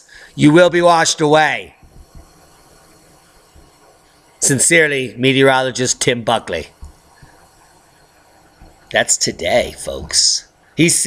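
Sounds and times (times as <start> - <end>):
microphone hiss: 0.0 - 11.0
soft low thumps: 1.7 - 4.4, 6.7 - 8.9.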